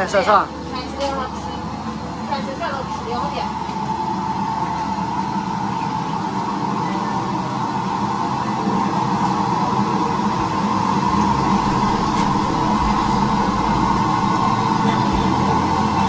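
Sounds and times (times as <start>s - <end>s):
mechanical rushing noise: 9.8s - 16.0s.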